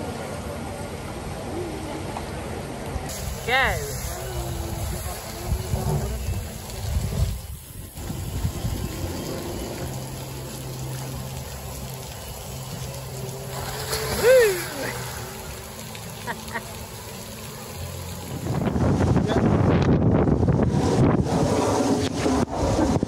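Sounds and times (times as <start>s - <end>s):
water running down slide: 3.1s - 19.7s.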